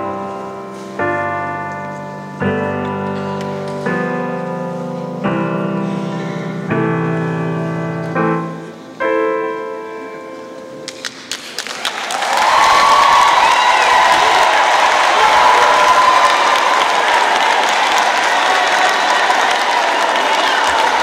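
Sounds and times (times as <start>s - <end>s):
audience applause: 10.9s - 21.0s
crowd cheering: 11.4s - 21.0s
long held call from crowd: 12.2s - 21.0s.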